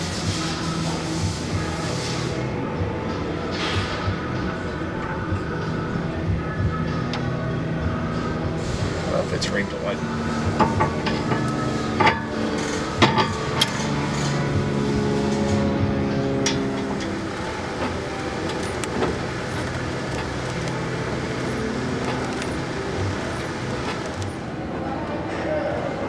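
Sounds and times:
vehicle engine idling: 0.0s - 26.0s.

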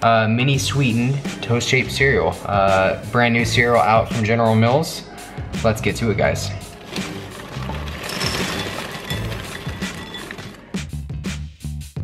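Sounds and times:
background music: 0.0s - 12.0s
cereal pouring into glass bowl: 6.9s - 10.6s.

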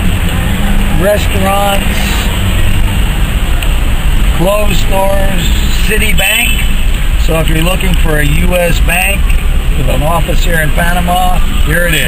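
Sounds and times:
car engine: 0.0s - 12.0s
road noise: 0.0s - 12.0s.

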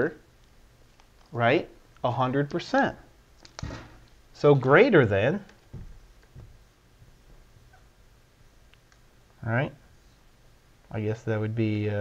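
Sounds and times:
marker squeaking on whiteboard: 7.6s - 8.0s.

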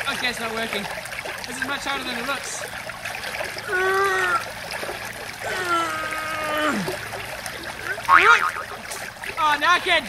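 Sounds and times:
small stream trickling: 0.0s - 10.0s
man's straining vocal sounds: 3.7s - 4.5s, 5.4s - 7.0s.

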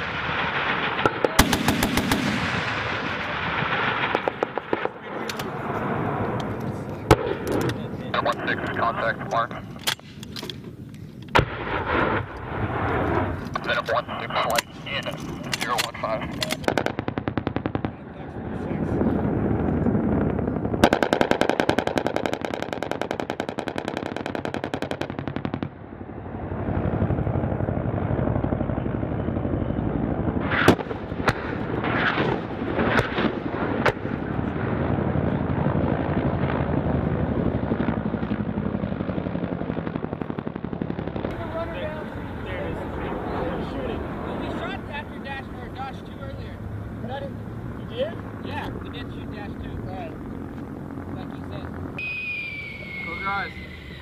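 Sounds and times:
sharp cracks: 0.0s - 5.6s, 6.3s - 18.0s, 19.6s - 25.9s, 30.4s - 34.6s
steady rumble: 0.0s - 54.0s
rapid automatic gunfire: 1.3s - 2.9s, 20.8s - 25.5s.

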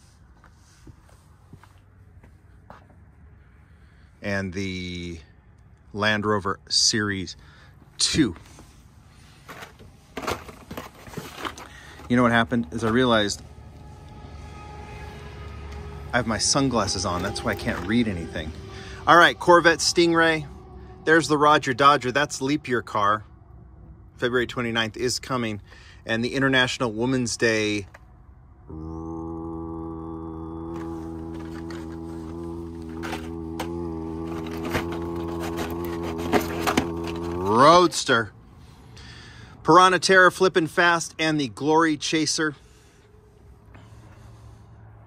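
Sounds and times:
highway traffic hum: 0.0s - 45.0s.

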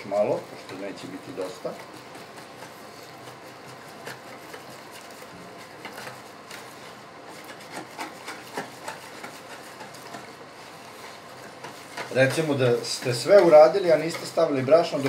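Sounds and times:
batter stirred in plastic bowl: 0.0s - 15.0s.

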